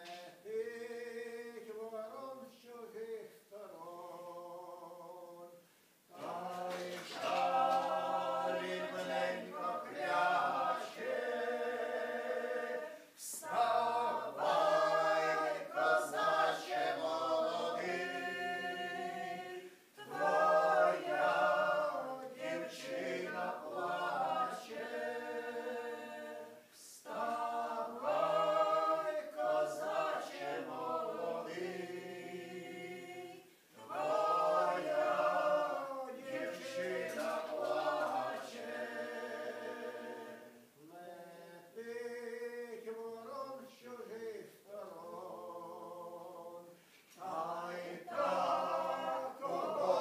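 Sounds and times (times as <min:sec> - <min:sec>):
group singing a cappella folk song: 0:00.0 - 0:50.0.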